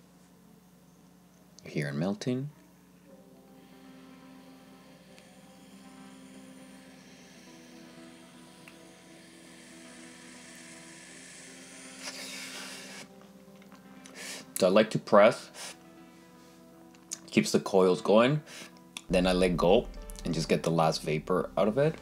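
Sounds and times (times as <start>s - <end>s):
soft background music: 0.0s - 22.0s
inhale through vape pen: 3.6s - 13.1s, 14.1s - 14.6s, 15.5s - 15.8s.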